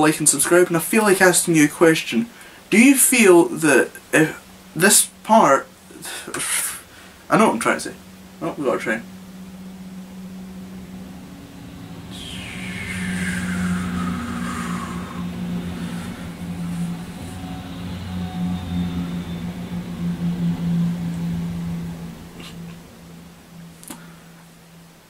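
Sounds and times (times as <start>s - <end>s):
high tone gliding down: 0.0s - 25.0s
train passing drone: 0.0s - 25.0s.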